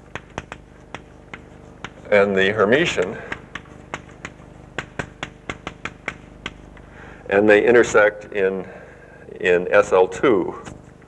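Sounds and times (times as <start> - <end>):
chalk tapping on a blackboard: 0.0 - 2.2, 2.8 - 6.9.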